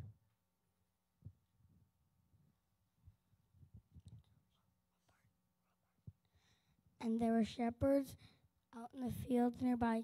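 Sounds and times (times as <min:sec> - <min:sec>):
faint whisper: 0:04.0 - 0:06.3.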